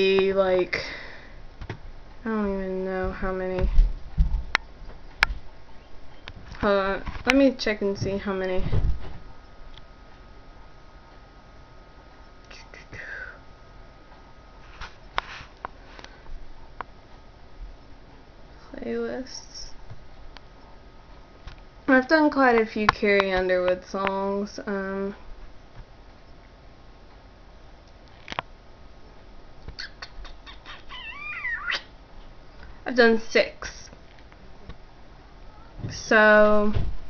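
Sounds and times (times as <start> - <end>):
faint electrical hum: 0.0 - 37.0
woman whispering: 12.5 - 13.5
wavering animal call: 29.8 - 31.9.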